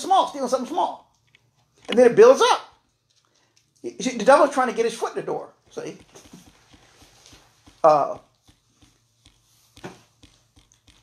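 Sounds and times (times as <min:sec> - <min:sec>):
faint small clicks: 0:02.7 - 0:03.9.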